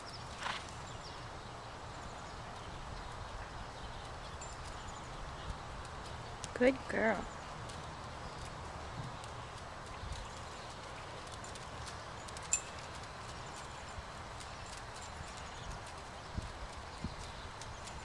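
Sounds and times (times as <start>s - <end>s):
hoofbeats on sand: 0.0s - 1.2s, 2.0s - 18.0s.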